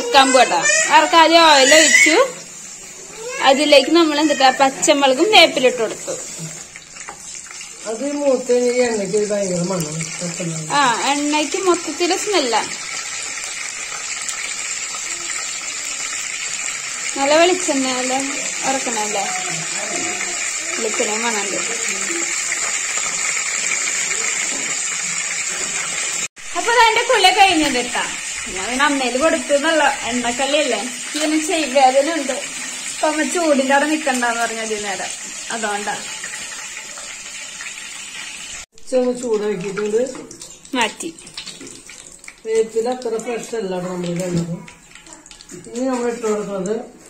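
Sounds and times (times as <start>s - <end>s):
chillies sizzling in hot oil: 0.0s - 47.0s.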